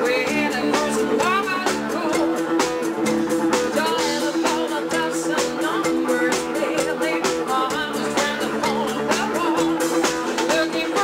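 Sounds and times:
live disco-rock band: 0.0s - 11.0s.

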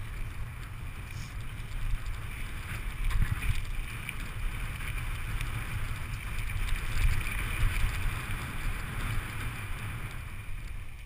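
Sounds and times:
faint bike rattles: 0.0s - 11.0s
wind buffeting microphone: 0.0s - 11.0s
tyres hissing on asphalt: 0.1s - 1.6s.

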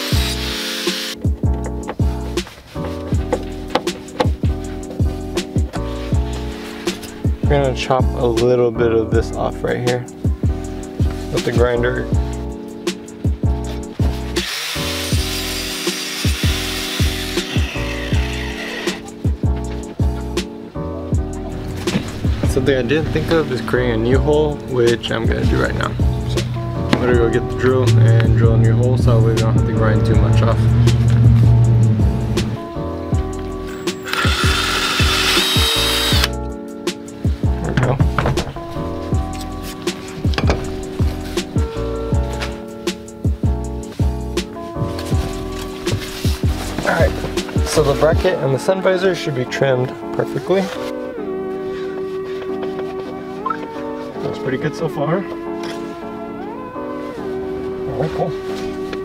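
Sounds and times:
angle grinder cutting metal: 0.0s - 1.2s, 14.4s - 19.1s, 33.9s - 36.3s
cordless drill boring metal: 0.0s - 1.2s, 14.4s - 19.0s, 33.7s - 36.3s
background music with steady beat: 0.0s - 59.0s
music with heavy beat: 1.2s - 7.4s, 25.2s - 44.6s, 45.2s - 48.2s.

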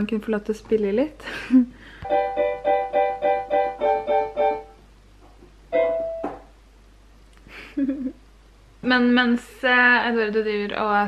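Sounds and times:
digital piano chords: 2.0s - 4.8s, 5.7s - 6.5s.

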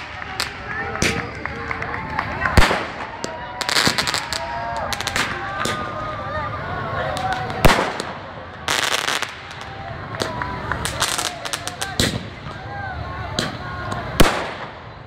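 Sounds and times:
firework bangs: 0.0s - 6.3s, 6.9s - 12.7s, 13.3s - 15.0s
firework crackling: 0.0s - 15.0s.

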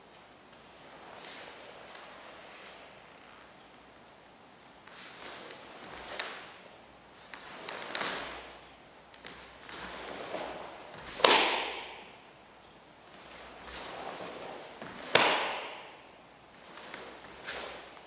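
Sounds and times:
uniform swishing: 0.1s - 3.9s, 4.8s - 8.7s, 13.1s - 18.0s
sharp cracks of uniform snapping: 11.2s - 12.1s, 15.1s - 16.0s.

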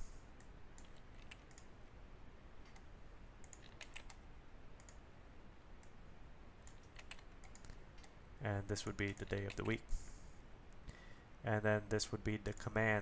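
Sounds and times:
keyboard and mouse clicks: 0.4s - 1.7s, 2.6s - 4.2s, 4.8s - 5.0s, 6.6s - 8.2s, 9.0s - 9.8s.

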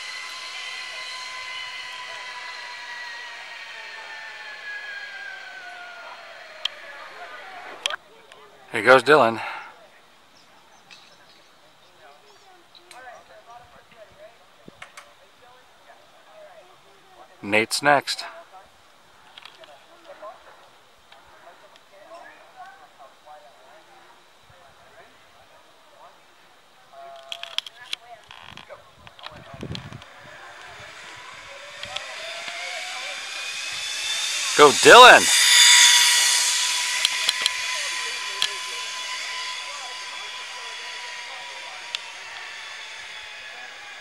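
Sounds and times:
zip line pulley hiss and whine: 0.0s - 10.4s, 26.9s - 44.0s
distant voices calling: 29.4s - 44.0s.

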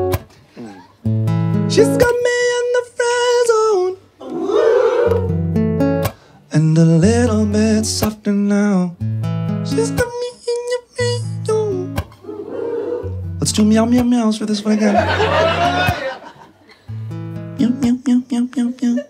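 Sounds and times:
acoustic guitar strumming chords: 1.0s - 3.4s, 5.1s - 12.2s, 13.0s - 14.5s, 16.9s - 18.7s
man singing: 1.7s - 4.1s, 6.5s - 9.0s, 9.6s - 12.0s, 13.4s - 15.8s, 17.6s - 19.0s.

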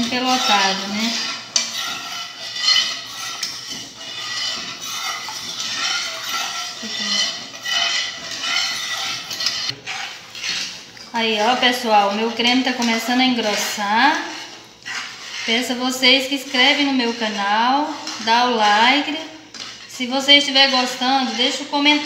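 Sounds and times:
spoon stirring in metal saucepan: 0.0s - 22.0s.

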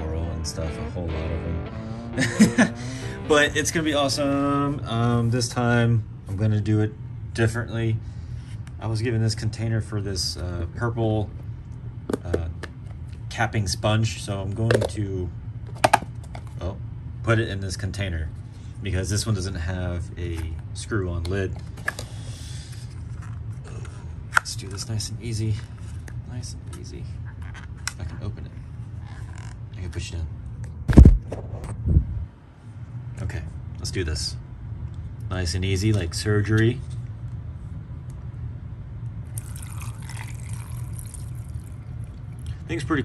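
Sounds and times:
steady low hum: 0.0s - 43.0s
water pouring into plastic container: 39.3s - 41.8s.

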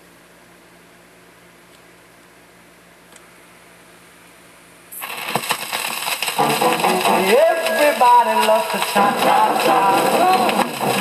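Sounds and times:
record surface noise and clicks: 5.0s - 11.0s
band playing instrumental: 6.3s - 11.0s.

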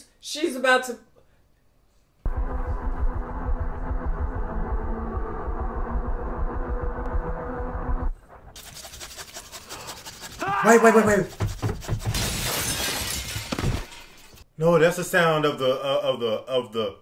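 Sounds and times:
dark droning horror score: 2.3s - 8.6s.

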